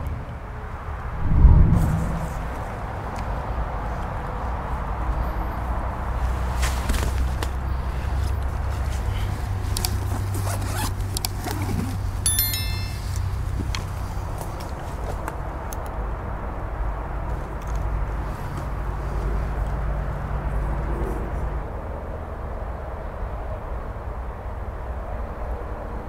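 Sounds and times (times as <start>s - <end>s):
steady low rumble: 1.0s - 3.6s
backpack zipper opening: 10.4s - 11.9s.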